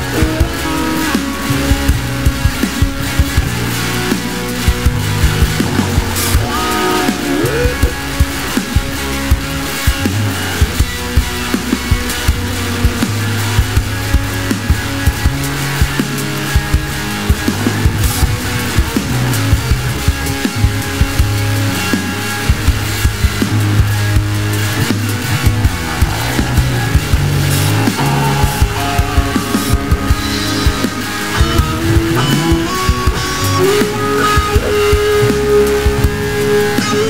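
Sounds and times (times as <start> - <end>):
bass guitar low notes: 0.0 - 37.0
stoner rock band playing: 0.0 - 37.0.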